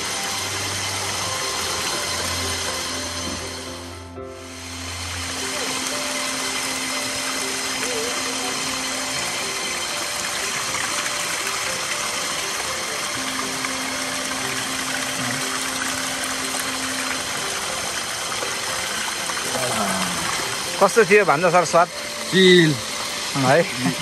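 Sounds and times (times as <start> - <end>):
faint background music: 0.0 - 24.0
water running from pipe: 0.0 - 24.0.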